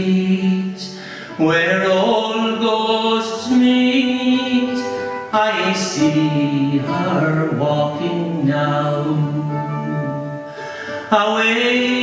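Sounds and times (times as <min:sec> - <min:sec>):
man singing slow song: 0:00.0 - 0:12.0
plucked string accompaniment: 0:00.0 - 0:12.0.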